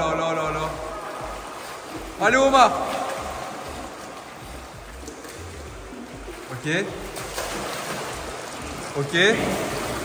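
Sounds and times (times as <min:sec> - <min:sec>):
pool water sloshing and splashing: 0:00.0 - 0:10.0.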